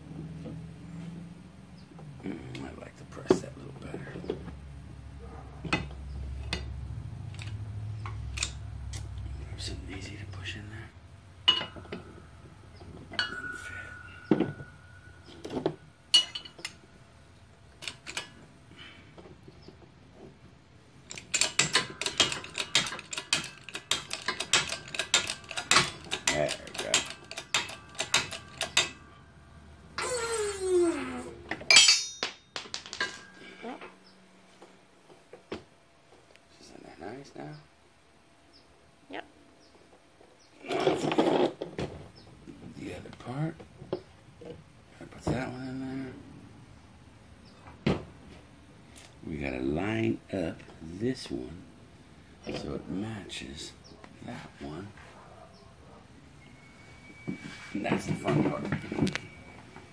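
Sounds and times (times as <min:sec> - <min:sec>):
rapid metal clatter: 0:21.1 - 0:29.0
metal parts clinking: 0:21.1 - 0:29.2, 0:31.5 - 0:33.6.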